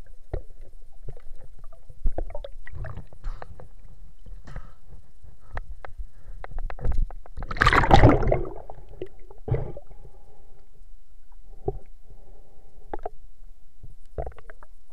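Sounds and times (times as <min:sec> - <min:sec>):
low underwater rumbling: 0:00.0 - 0:14.9
underwater clicks and knocks: 0:00.3 - 0:08.5, 0:13.8 - 0:14.7.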